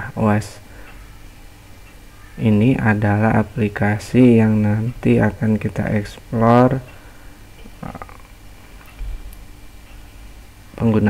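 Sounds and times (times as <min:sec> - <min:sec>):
microphone hum and hiss: 0:00.0 - 0:11.0.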